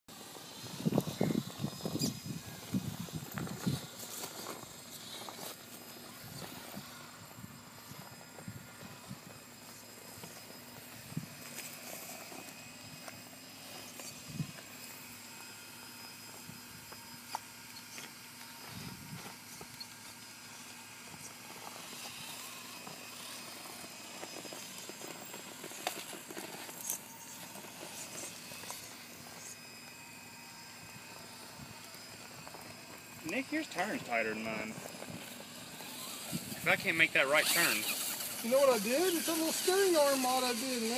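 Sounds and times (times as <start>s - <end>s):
small electric motors whining: 0.1s - 40.9s.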